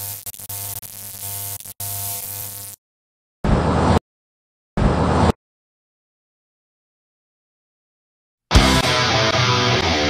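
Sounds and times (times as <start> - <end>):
harsh electronic static: 0.0 - 2.8.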